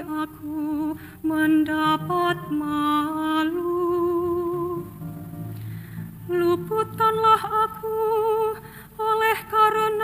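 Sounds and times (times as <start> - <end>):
woman singing: 0.0 - 5.0, 6.3 - 10.0
soft instrumental accompaniment: 0.0 - 10.0.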